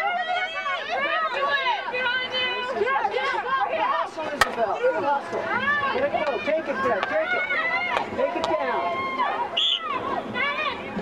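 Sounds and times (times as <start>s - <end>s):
many voices talking and calling out: 0.0s - 11.0s.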